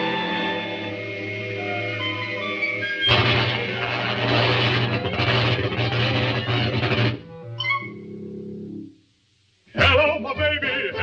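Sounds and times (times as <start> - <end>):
buzzing ray-gun blast: 3.1 - 7.2.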